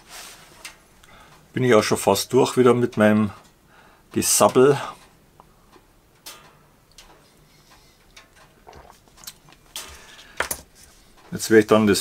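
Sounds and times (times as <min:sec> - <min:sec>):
wood stove crackling: 0:00.0 - 0:12.0.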